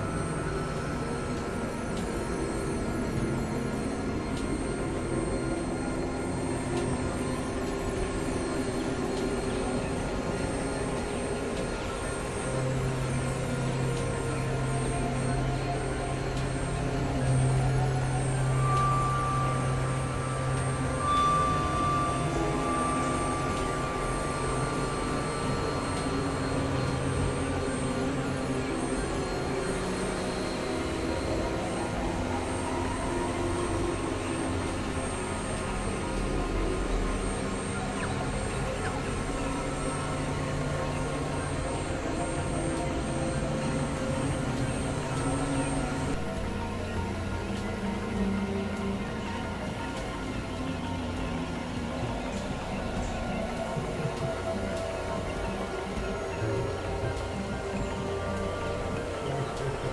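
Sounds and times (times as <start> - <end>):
electronic drone music: 0.0 - 59.9
low held synth note: 14.6 - 47.3.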